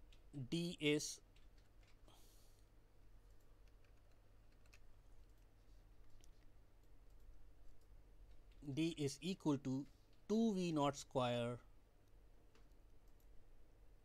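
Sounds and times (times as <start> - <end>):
low electrical hum: 0.0 - 14.0.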